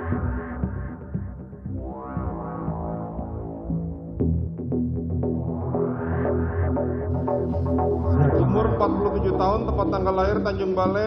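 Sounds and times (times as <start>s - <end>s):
electronic music with throbbing bass: 0.0s - 11.0s.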